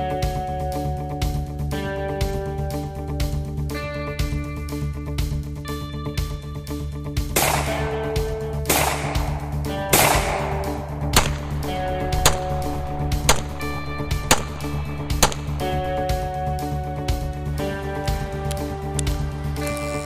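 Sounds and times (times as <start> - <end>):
guitar music: 0.0 - 20.0
handgun shots: 7.4 - 16.0.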